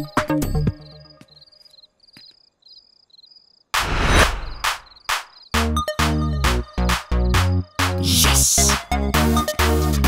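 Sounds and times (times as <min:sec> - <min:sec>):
crickets chirping: 0:00.7 - 0:05.6.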